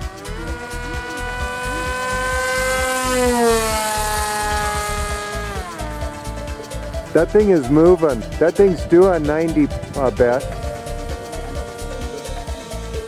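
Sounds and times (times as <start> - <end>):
electric motor and propeller whine: 0.0 - 13.0.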